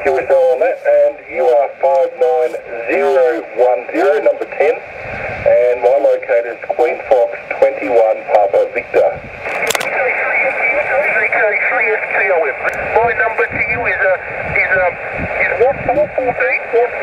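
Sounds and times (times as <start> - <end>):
tinny radio speech: 0.0 - 4.8, 5.4 - 17.0
radio band hiss: 0.0 - 17.0.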